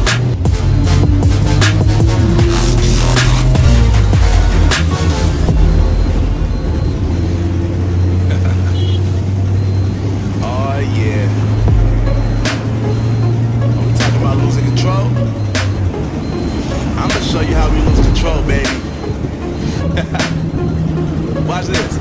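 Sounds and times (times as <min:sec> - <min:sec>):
music: 0:00.0 - 0:22.0
road traffic: 0:00.0 - 0:22.0
vehicle engine drone: 0:00.0 - 0:22.0
voices: 0:00.1 - 0:22.0.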